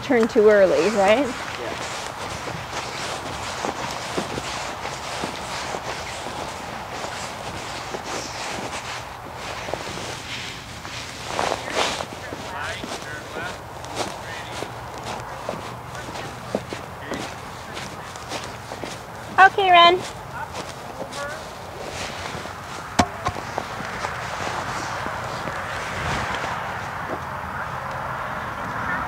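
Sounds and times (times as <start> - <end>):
horse hooves trotting on dirt: 0.0 - 28.0.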